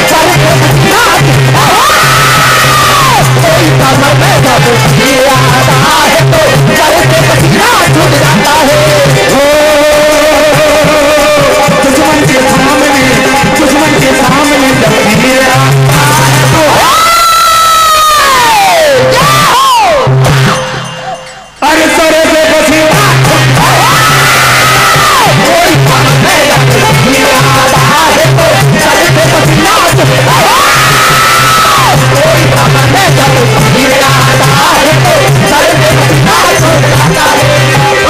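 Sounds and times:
man singing a falling cry: 0.0s - 20.6s, 21.6s - 38.0s
devotional folk music: 0.0s - 38.0s
dholak drum beat: 0.0s - 38.0s
voice long high cry: 1.0s - 3.4s, 16.7s - 20.2s, 23.5s - 25.5s, 29.8s - 32.4s.

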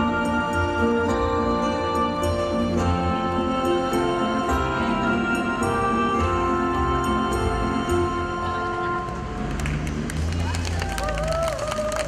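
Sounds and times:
ocarina ensemble chord: 0.0s - 9.8s
crowd voices: 3.9s - 12.0s
scattered clapping: 9.4s - 12.0s.

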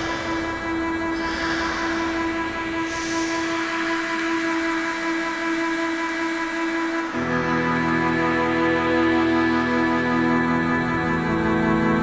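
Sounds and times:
noise sweeps: 0.0s - 5.6s
held synth chord: 0.0s - 12.0s.

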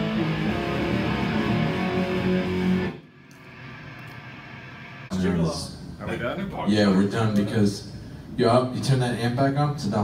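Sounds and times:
metal band playing: 0.0s - 3.0s.

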